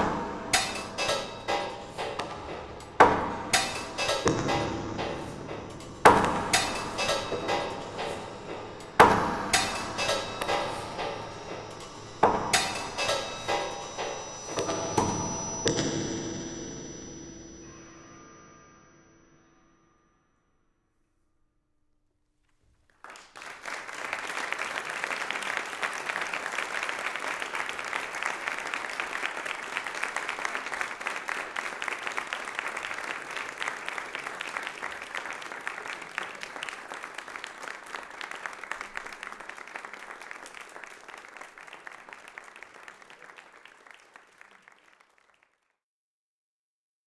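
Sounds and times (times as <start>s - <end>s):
audience applause: 22.9s - 45.7s.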